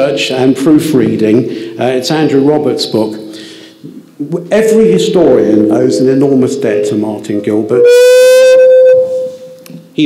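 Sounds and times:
microphone feedback howl: 7.8 - 9.7.

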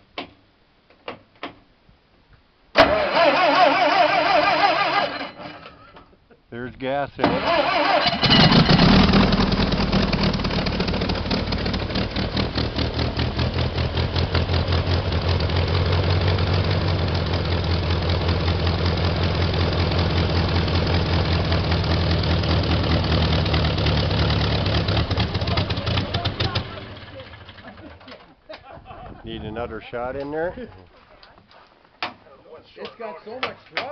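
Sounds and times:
air sled engine and propeller: 7.3 - 27.6.

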